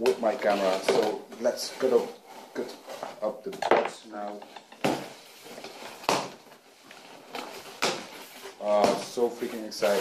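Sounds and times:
rustling scrapes: 0.2s - 3.4s, 4.4s - 10.0s.

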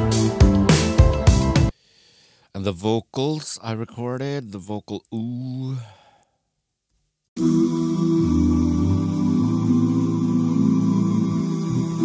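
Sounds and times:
layered wordless vocal chords: 7.4s - 12.0s.

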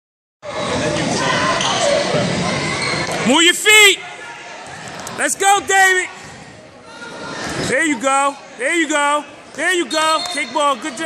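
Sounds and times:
spectators' voices and shouts: 0.4s - 11.0s.

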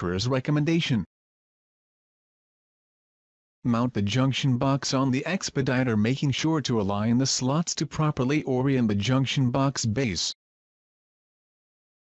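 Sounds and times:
person narrating: 0.0s - 1.1s, 3.7s - 10.4s.

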